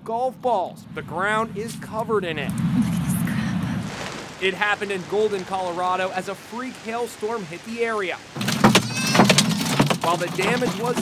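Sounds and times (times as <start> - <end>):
hail pounding on car roof: 8.4 - 11.0.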